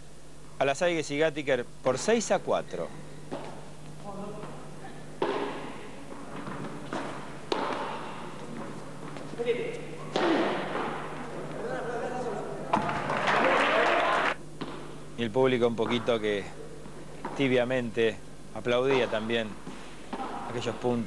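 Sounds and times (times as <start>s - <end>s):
ball hitting court walls: 3.3s - 3.8s, 4.4s - 11.6s, 12.7s - 13.2s, 14.6s - 17.6s, 18.7s - 21.0s.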